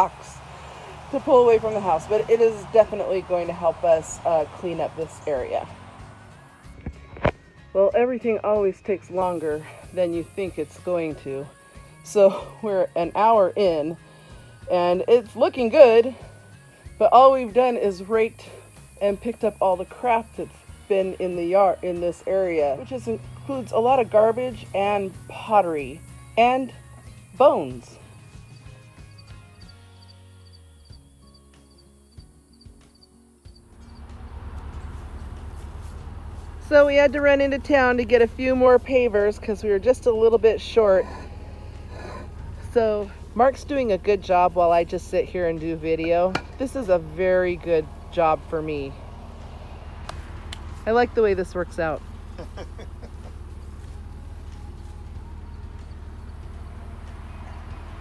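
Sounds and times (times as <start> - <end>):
outdoor noise with low rumble: 0.0 - 58.0
soft background music: 0.0 - 58.0.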